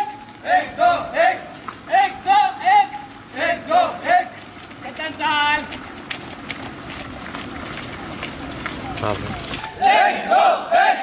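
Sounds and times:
people shouting drill calls: 0.0 - 5.8, 9.2 - 11.0
footsteps running on pavement: 0.0 - 10.2.

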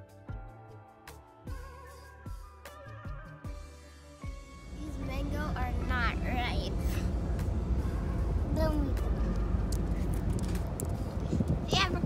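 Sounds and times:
ferry engine rumble: 4.7 - 12.0
child speaking: 4.8 - 7.1, 8.5 - 9.2, 11.7 - 12.0.

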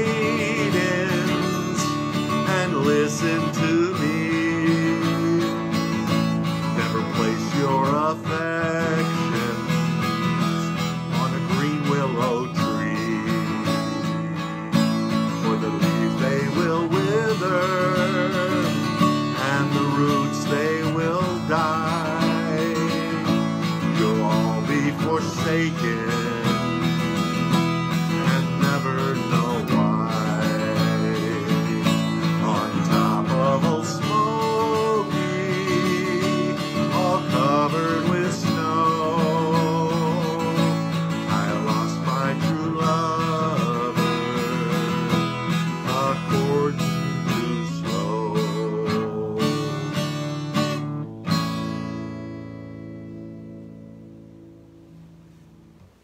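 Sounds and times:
man singing: 0.0 - 50.9
acoustic guitar strumming: 0.0 - 56.0.

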